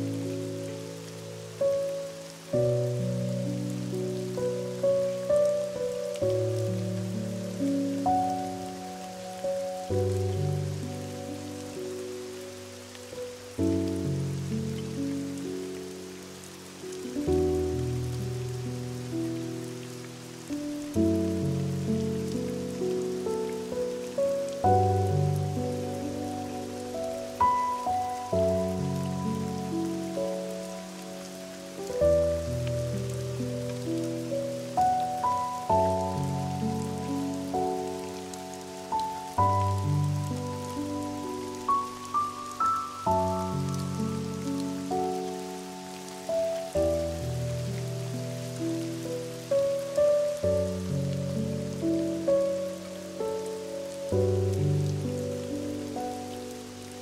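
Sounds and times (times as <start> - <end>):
gentle piano music: 0.0 - 57.0
rain hissing: 0.0 - 57.0.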